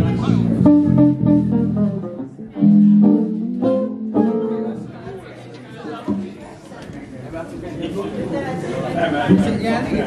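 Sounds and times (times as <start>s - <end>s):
murmur of crowd chatter: 0.0s - 10.0s
guitar chord ringing: 0.7s - 4.9s.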